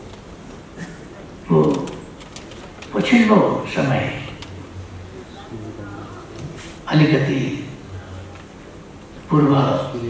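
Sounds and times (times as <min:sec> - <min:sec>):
man speaking over a microphone: 0:01.4 - 0:02.0, 0:02.9 - 0:04.6, 0:05.2 - 0:08.3, 0:09.3 - 0:10.0.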